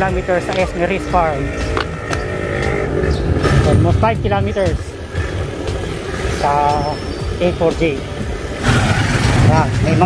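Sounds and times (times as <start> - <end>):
motorcycle engine running: 0.0 - 10.0
wind and road noise: 0.0 - 10.0.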